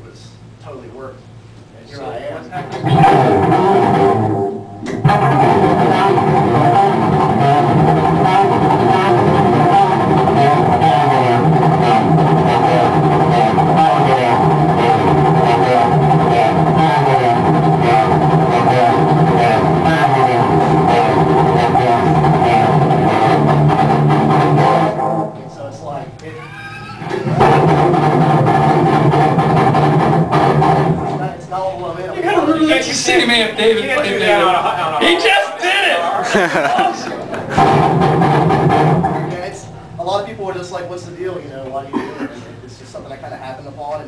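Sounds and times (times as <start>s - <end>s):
electric guitar through amplifier: 2.5s - 35.2s, 36.2s - 40.4s.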